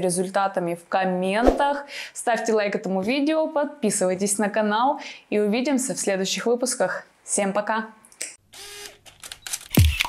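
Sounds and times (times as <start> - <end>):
camera shutter clicks: 8.6 - 10.0.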